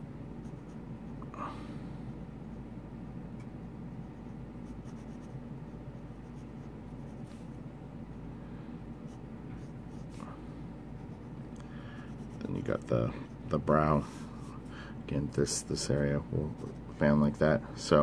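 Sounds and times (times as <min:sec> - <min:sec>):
low room hum: 0:00.0 - 0:18.0
pencil sketching on paper: 0:00.4 - 0:00.8, 0:04.1 - 0:07.4, 0:10.9 - 0:13.8, 0:16.4 - 0:17.2.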